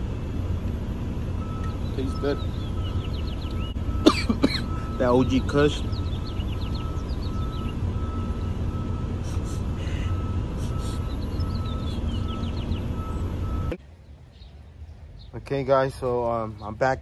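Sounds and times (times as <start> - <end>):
vehicle rumbling: 0.0 - 17.0
backup beeps: 1.4 - 13.8.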